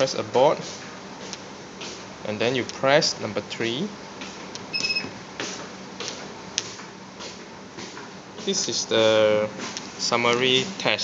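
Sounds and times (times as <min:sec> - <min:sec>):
short electronic beep: 0:04.7 - 0:05.1.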